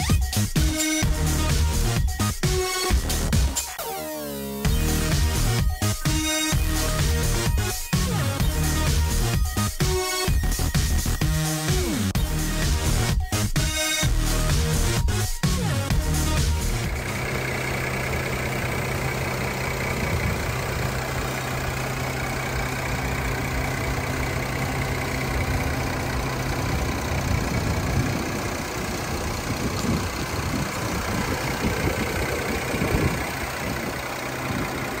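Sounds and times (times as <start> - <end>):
car engine idling: 0.0 - 35.0.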